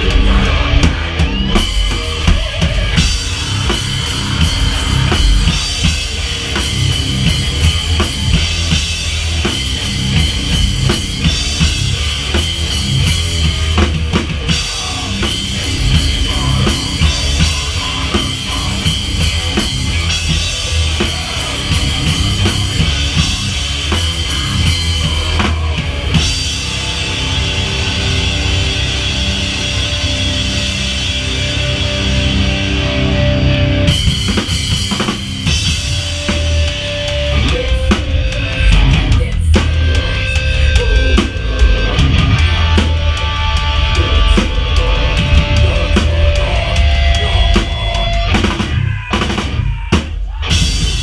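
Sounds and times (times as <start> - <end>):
electric guitar: 0.0 - 51.0
heavy rock band playing: 0.0 - 51.0
loud drum kit: 0.0 - 51.0.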